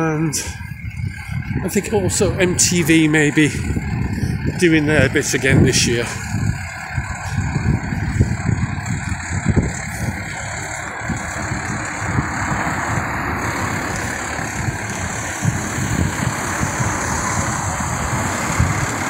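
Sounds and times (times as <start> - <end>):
heavy vehicle engine running: 0.0 - 19.0
road traffic: 0.0 - 19.0.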